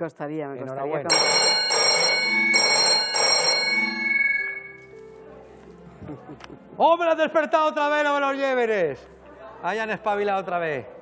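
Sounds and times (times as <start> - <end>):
telephone bell ringing: 1.1 - 4.9.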